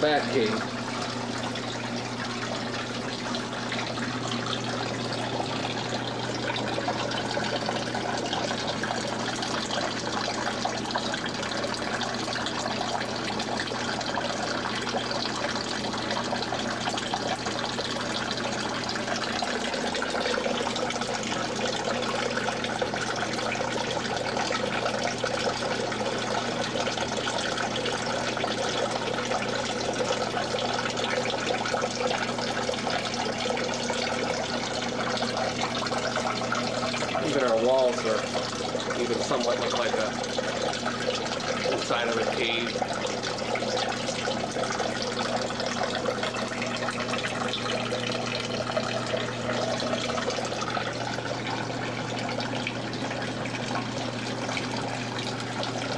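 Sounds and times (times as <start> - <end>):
low steady hum: 0.0 - 55.9
water running and splashing: 0.0 - 55.9.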